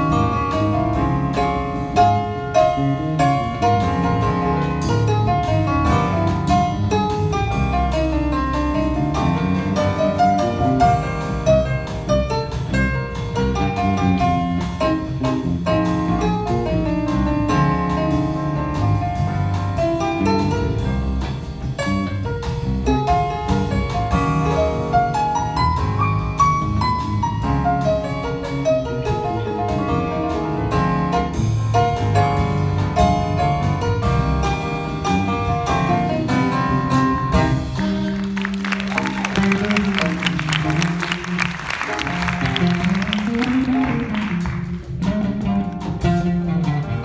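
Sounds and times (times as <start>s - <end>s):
drum kit and cymbals: 0.0s - 47.0s
jazz band playing live: 0.0s - 47.0s
piano: 0.0s - 47.0s
walking bass line: 0.0s - 47.0s.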